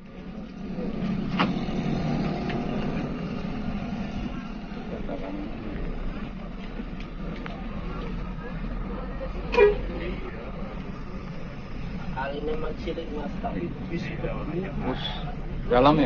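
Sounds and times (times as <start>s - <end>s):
bus engine drone: 0.0s - 16.0s.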